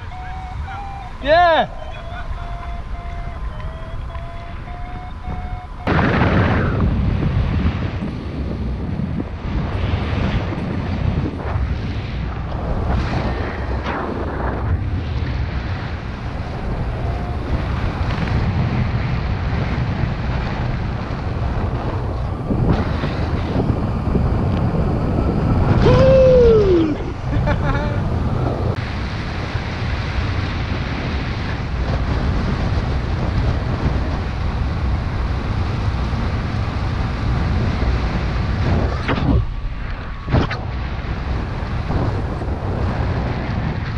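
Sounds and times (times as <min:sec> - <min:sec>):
short downward gliding tone: 0:00.0 - 0:06.9
wind buffeting microphone: 0:00.0 - 0:43.9.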